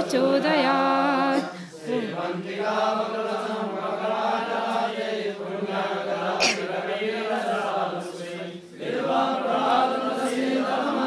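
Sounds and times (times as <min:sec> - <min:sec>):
group chanting in unison: 0:00.0 - 0:11.0.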